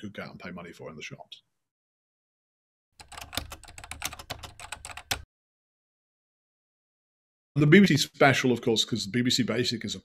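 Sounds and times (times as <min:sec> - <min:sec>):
computer keyboard typing: 0:03.0 - 0:05.3.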